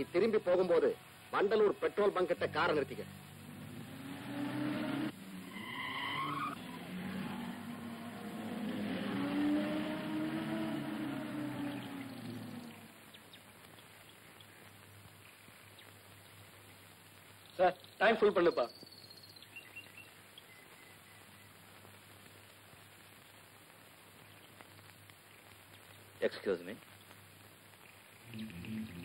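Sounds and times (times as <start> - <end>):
car engine: 2.4 - 13.0
tyre squeal: 5.5 - 7.6.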